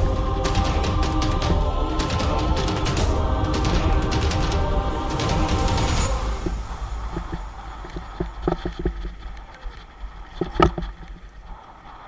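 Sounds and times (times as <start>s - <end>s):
low rumble: 0.0s - 10.7s
mountain bike rattling and knocking: 6.4s - 11.4s.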